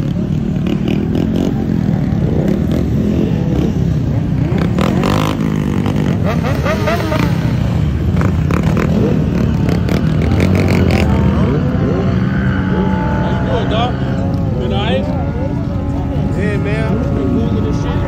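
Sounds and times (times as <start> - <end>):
motorcycle engines revving: 0.0 - 18.0.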